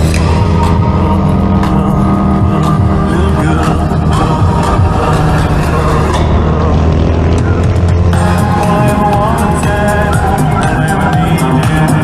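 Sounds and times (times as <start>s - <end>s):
motorcycle engine running: 0.0s - 12.0s
music track: 0.0s - 12.0s.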